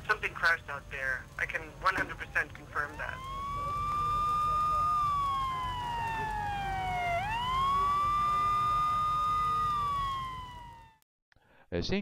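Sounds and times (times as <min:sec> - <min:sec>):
emergency siren wailing: 0:02.2 - 0:11.0.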